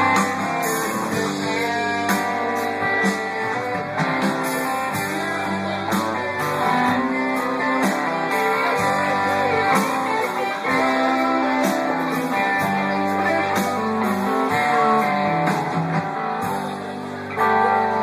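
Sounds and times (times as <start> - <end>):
bass guitar: 0.0 - 18.0
drums: 0.0 - 18.0
electric guitar: 0.0 - 18.0
keyboard: 0.0 - 18.0
strummed acoustic guitar: 0.0 - 18.0.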